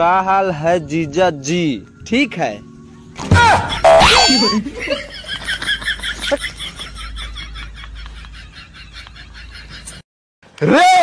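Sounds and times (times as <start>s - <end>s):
wobbling cartoon tone: 3.4s - 4.7s.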